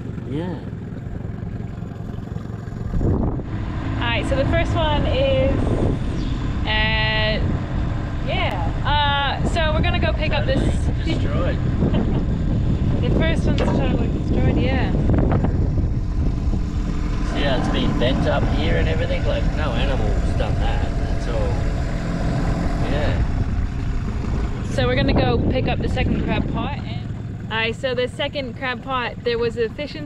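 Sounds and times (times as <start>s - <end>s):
outboard motor idling: 0.0s - 30.0s
wind rumbling on microphone: 0.0s - 30.0s.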